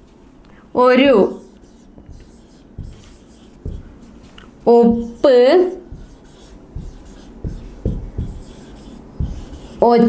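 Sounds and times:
marker writing on whiteboard: 1.1 - 10.0.

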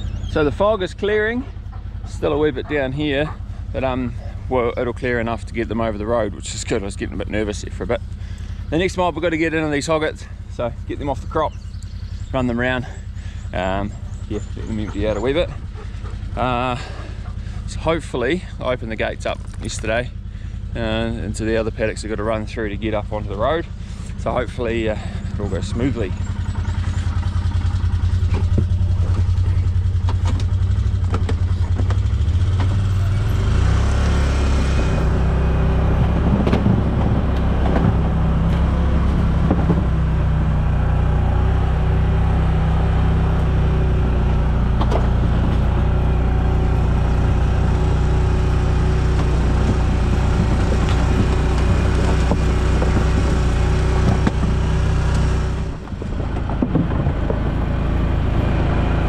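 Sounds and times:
utility vehicle engine running: 0.0 - 59.0
vehicle knocks: 36.0 - 40.0, 49.1 - 54.7, 55.8 - 57.7.

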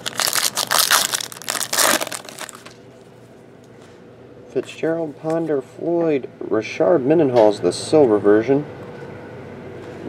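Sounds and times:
foil wrapper tearing and crinkling: 0.0 - 2.8.

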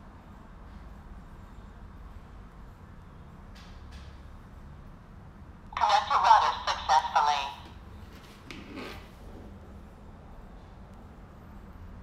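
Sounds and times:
recorded voice prompt from small speaker: 5.8 - 7.8.

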